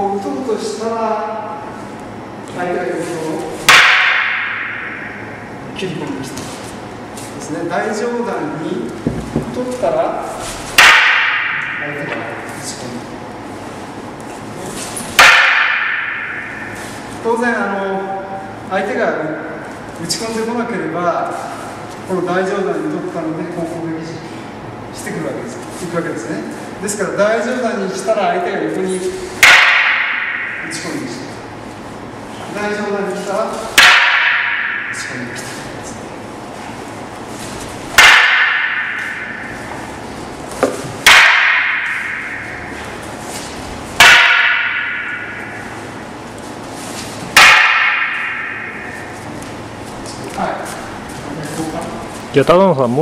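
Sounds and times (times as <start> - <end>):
wooden staffs clacking: 3.4 - 5.5, 8.9 - 12.7, 14.4 - 17.3, 28.9 - 31.4, 32.4 - 36.0, 36.6 - 52.2
small knock: 9.0 - 9.6.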